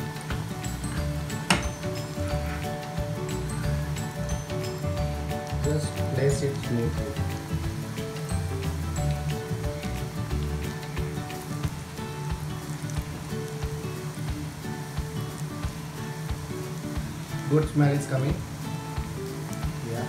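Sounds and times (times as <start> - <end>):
background music: 0.0 - 20.0
batter sizzling in hot oil: 0.0 - 20.0.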